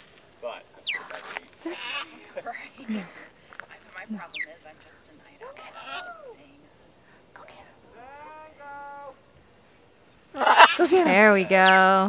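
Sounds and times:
distant person calling out: 5.5s - 6.6s, 7.8s - 9.3s.

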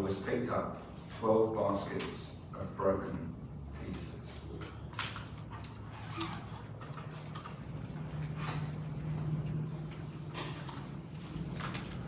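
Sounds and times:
low room hum: 0.0s - 12.0s
papers rustling and clicking: 4.6s - 12.0s.

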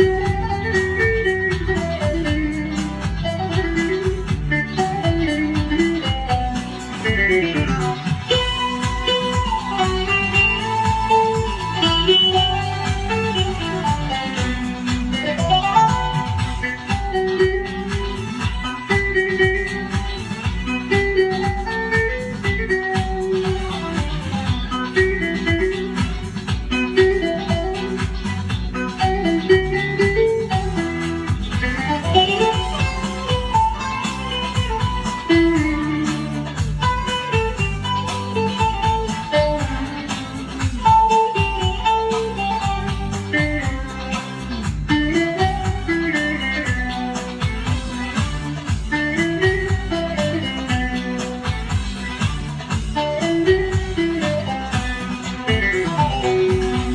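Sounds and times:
long-necked lute folk melody: 0.0s - 56.9s.

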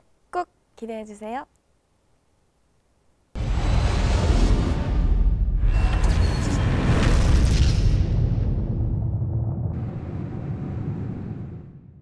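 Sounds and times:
low rumbling boom: 3.4s - 12.0s.

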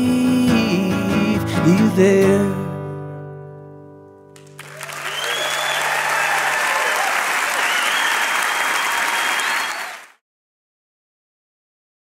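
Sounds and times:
audience applause and cheering: 4.4s - 10.2s
audience whoops: 4.5s - 10.1s.

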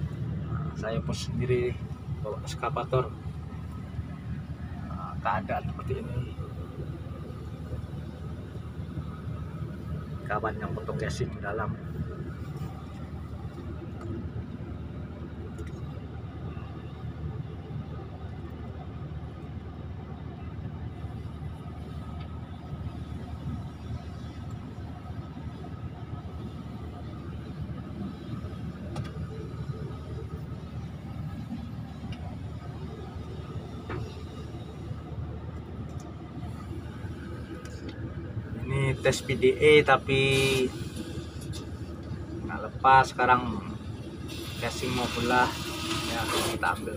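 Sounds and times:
excavator diesel engine running: 0.0s - 46.9s.

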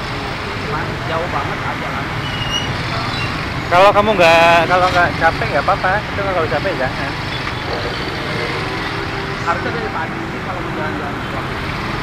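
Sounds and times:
street traffic rumble: 0.0s - 12.0s
faint voices: 0.4s - 12.0s.

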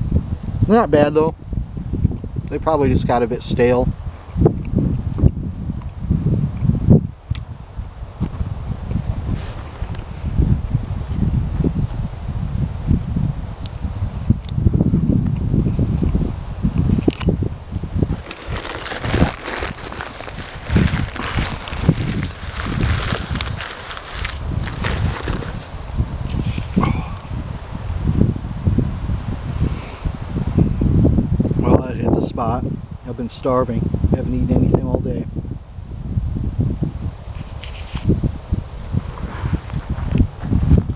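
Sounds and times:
wind buffeting microphone: 0.0s - 40.9s
leaves and branches rustling: 15.7s - 26.8s.

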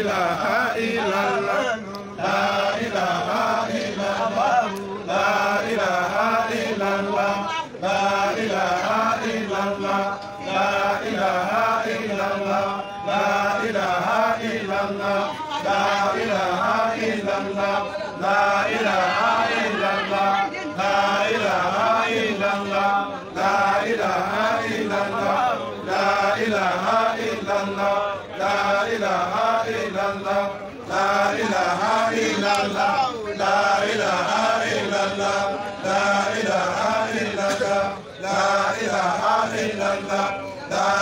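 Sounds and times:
men chanting together: 0.0s - 41.0s.

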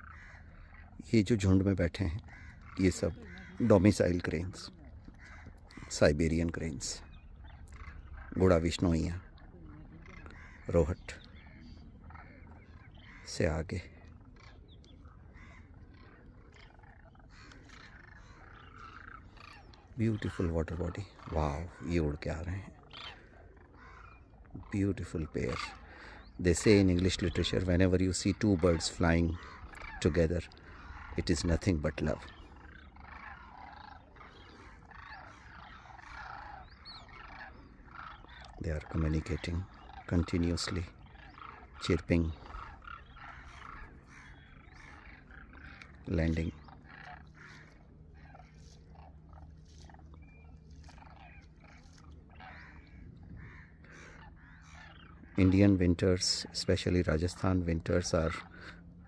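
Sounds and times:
distant cranes calling: 0.0s - 59.0s.

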